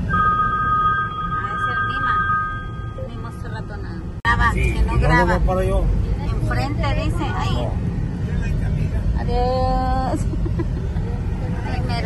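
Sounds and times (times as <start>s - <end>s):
steady low rumble: 0.0s - 12.0s
people talking: 1.4s - 5.0s.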